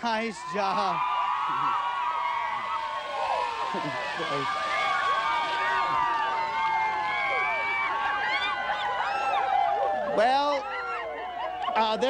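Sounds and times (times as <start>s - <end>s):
crowd shrieking and cheering: 0.0s - 12.0s.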